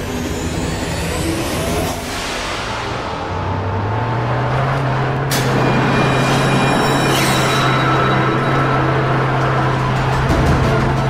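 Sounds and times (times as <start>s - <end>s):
car engine running: 0.0s - 11.0s.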